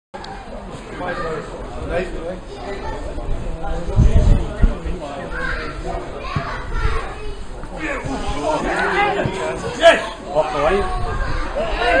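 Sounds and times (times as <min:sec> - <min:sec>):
low rumbling thumps: 0:03.3 - 0:05.0.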